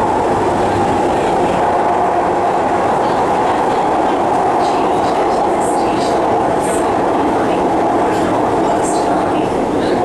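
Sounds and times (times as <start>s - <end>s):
metro train running in tunnel: 0.0s - 10.0s.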